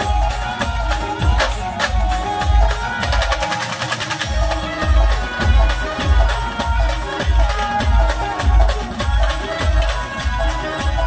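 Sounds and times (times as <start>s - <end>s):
street band playing folk music: 0.0s - 11.0s
rapid drum roll: 0.8s - 10.0s
heavy bass beats: 4.2s - 11.0s.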